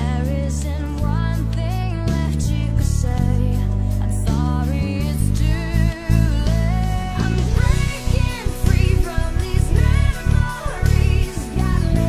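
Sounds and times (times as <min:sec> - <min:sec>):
electric bass line: 0:00.0 - 0:12.0
person singing: 0:00.0 - 0:12.0.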